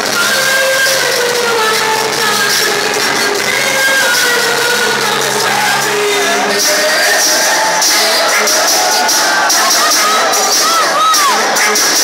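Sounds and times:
low bass notes: 0.0s - 11.6s
band playing: 0.0s - 12.0s
woman singing into a microphone: 0.0s - 12.0s.

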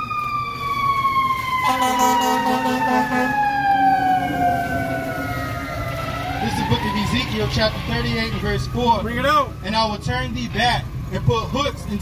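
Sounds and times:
emergency vehicle siren wailing: 0.0s - 12.0s.

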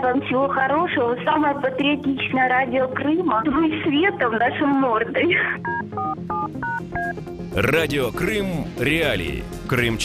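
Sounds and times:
telephone keypad dialling tones: 5.6s - 7.1s.

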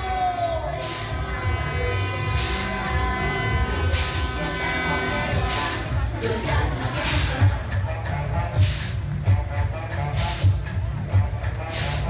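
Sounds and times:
thumping bass: 0.0s - 12.0s
burst of hiss: 0.7s - 1.2s, 3.9s - 4.3s, 8.6s - 8.9s
buzzing drone: 0.7s - 7.0s.

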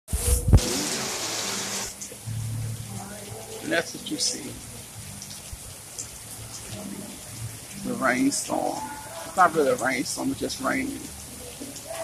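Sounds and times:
heavy rain falling: 0.1s - 12.0s.

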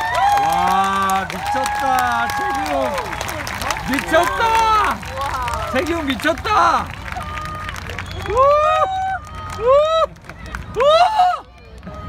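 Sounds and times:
audience exclaiming in amazement: 0.0s - 12.0s
low hum of crowd: 0.0s - 12.0s.

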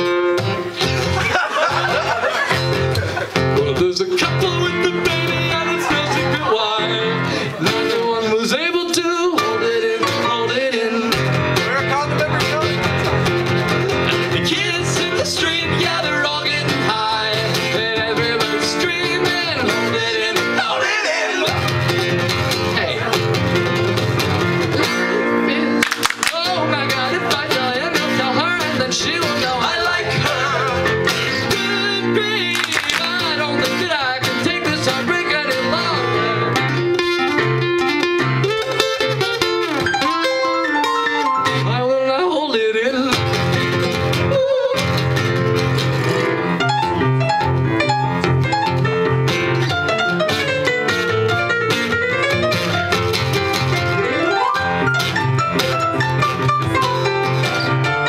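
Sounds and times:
live band with guitar: 0.0s - 58.0s
man singing: 3.3s - 12.9s, 14.0s - 22.0s, 22.6s - 23.4s, 25.1s - 36.8s, 41.4s - 45.2s.

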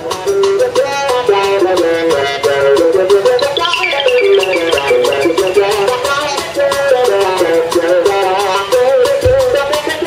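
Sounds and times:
keyboards: 0.0s - 8.6s
drum beat: 3.4s - 6.5s
electric guitar melody: 3.4s - 6.7s.

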